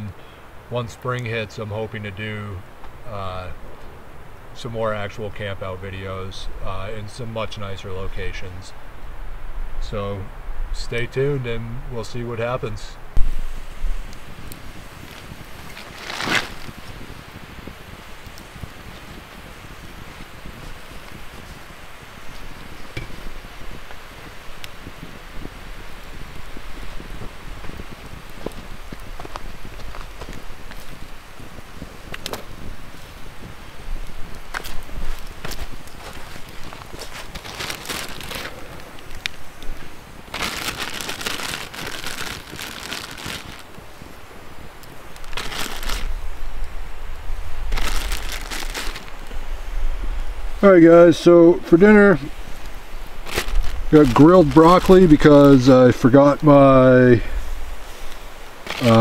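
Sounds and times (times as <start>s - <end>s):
campfire crackling and popping: 0.0s - 59.0s
plastic bag crinkling: 15.0s - 16.9s, 34.6s - 39.3s, 40.3s - 43.8s, 45.2s - 46.1s, 47.7s - 49.4s, 53.2s - 55.7s, 58.6s - 59.0s.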